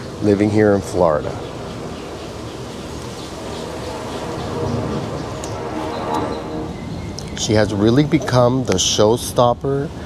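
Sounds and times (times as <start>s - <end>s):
faint steady hum: 0.0s - 10.0s
low rumble: 0.6s - 7.9s.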